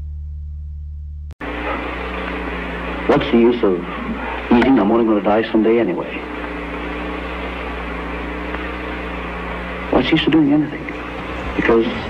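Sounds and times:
deep hum: 0.0 - 12.0
synthesizer pad chord: 1.4 - 12.0
sampled spoken voice: 3.0 - 6.3, 9.9 - 12.0.

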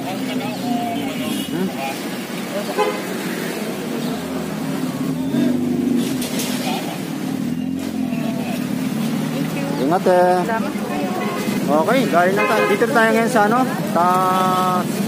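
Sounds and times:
engine humming: 0.0 - 15.0
people chattering: 0.0 - 15.0.

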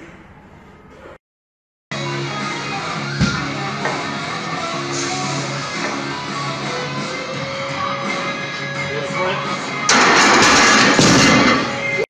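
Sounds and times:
barbell and plates crashing: 9.9 - 12.0.

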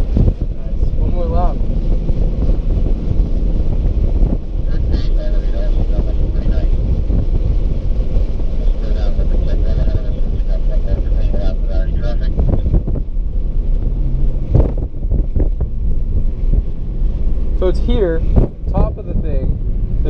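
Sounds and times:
car engine and tyre drone: 0.0 - 20.0.

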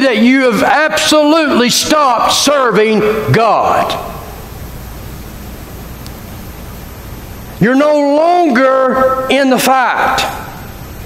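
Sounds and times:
man's voice: 0.0 - 4.2, 7.6 - 10.5
faint low hum: 0.0 - 11.0.

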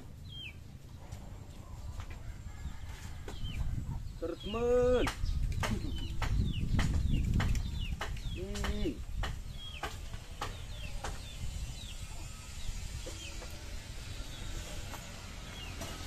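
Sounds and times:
birds chirping: 0.0 - 16.0.

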